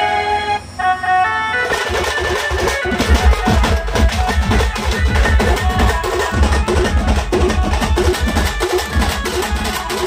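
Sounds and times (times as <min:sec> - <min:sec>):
held melody line: 0:00.0 - 0:10.0
folk drum ensemble fast beats: 0:01.6 - 0:10.0
heavy low drum strokes: 0:01.6 - 0:10.0.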